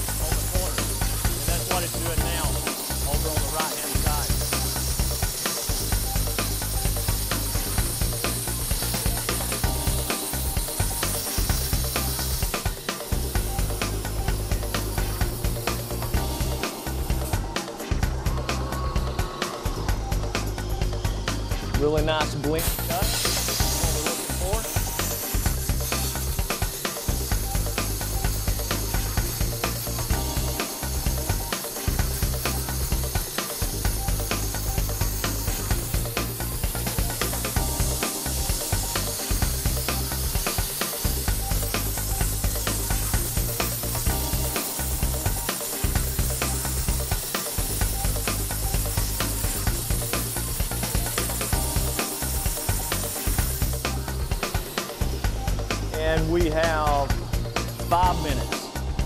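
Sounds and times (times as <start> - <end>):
background music with pulsing bass: 0.0 - 59.0
waterjet cutting stone hiss: 0.0 - 59.0.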